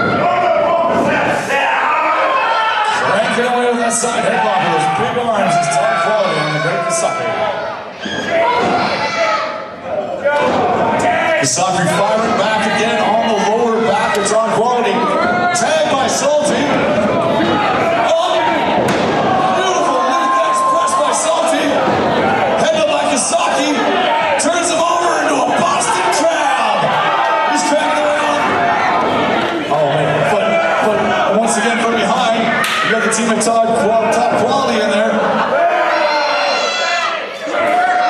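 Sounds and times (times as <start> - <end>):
wrestling slaps and thuds: 16.4 - 20.0.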